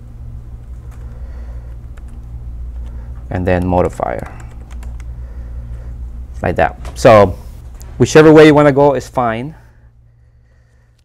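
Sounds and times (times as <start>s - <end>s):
keyboard keystrokes: 3.5s - 5.1s.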